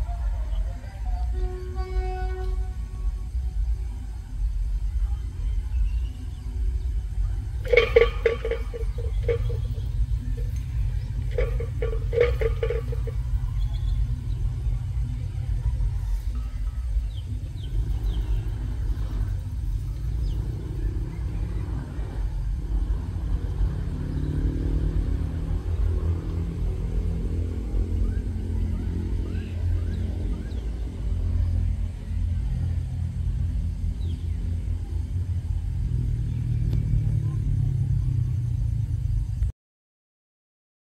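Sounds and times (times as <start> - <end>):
locomotive horn blasts: 0.0 - 3.8, 7.4 - 20.3
diesel locomotive rumbling: 0.0 - 39.5.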